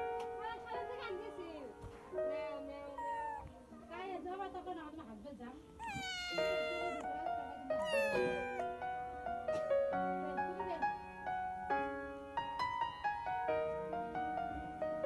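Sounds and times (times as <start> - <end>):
background music: 0.0 - 15.0
kitten meowing: 2.9 - 3.6, 5.8 - 8.8.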